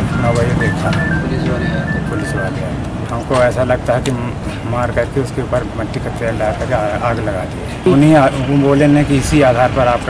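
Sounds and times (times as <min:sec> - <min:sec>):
faint voices: 0:00.0 - 0:10.0
street traffic rumble: 0:00.0 - 0:10.0.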